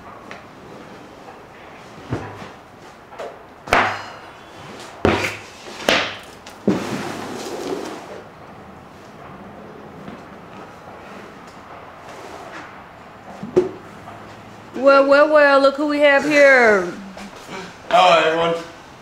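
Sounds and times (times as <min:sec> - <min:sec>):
mat scraping on floor: 0:04.5 - 0:08.3, 0:10.0 - 0:13.6
mat thudding on floor: 0:05.0 - 0:06.8.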